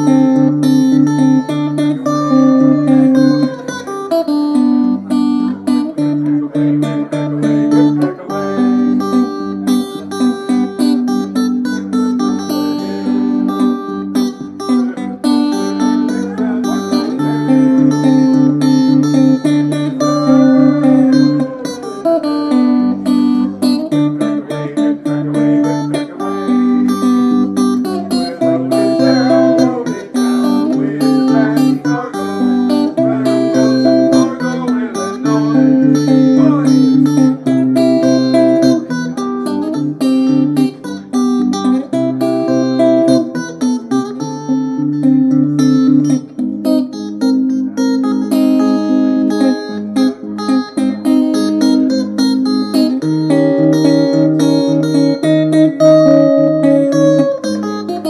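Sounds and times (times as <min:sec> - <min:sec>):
fingerstyle electric guitar: 0:00.0 - 0:58.0.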